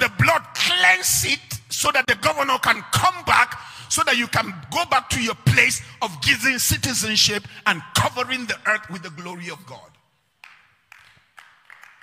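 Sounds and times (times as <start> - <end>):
faint hand claps: 10.4 - 12.0.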